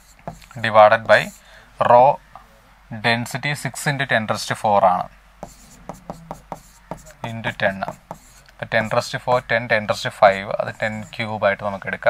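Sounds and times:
pen tapping and scratching on board: 0:00.0 - 0:01.4, 0:05.4 - 0:09.5.

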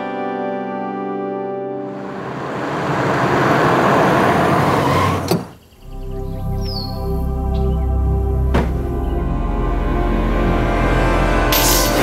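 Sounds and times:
whoosh transition effect: 0:01.9 - 0:05.2.

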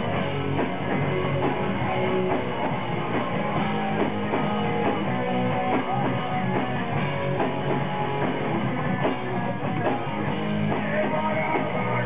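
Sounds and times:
driving drum beat: 0:00.0 - 0:12.0
electric guitars: 0:00.0 - 0:12.0.

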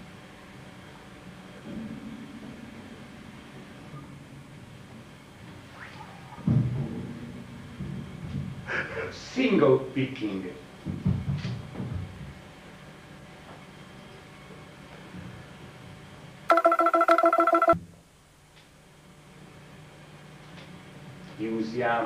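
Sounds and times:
amplifier hum: 0:16.5 - 0:17.8
warbling electronic tone: 0:16.5 - 0:17.8.

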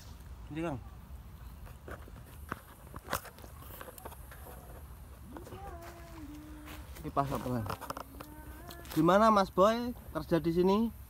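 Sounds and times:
person humming: 0:05.2 - 0:07.0, 0:08.0 - 0:09.0.

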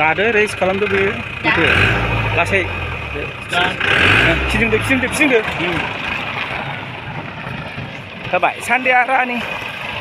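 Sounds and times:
jeep engine running: 0:00.0 - 0:10.0.

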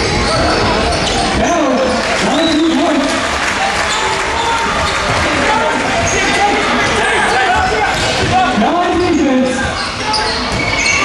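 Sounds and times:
voices calling in echoing hall: 0:00.0 - 0:11.0.

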